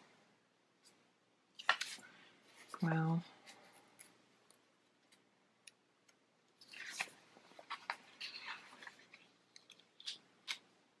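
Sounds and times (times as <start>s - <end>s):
paper stickers peeling crackles: 6.6s - 10.7s.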